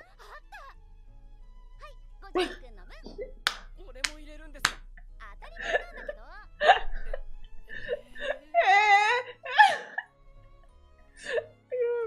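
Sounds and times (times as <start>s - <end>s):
background music: 0.0s - 12.0s
woman laughing: 5.6s - 7.2s, 9.0s - 10.0s.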